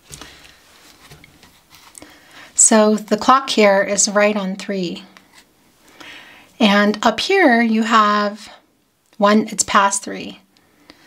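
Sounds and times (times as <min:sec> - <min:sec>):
cards rustling and tapping: 0:00.0 - 0:02.1.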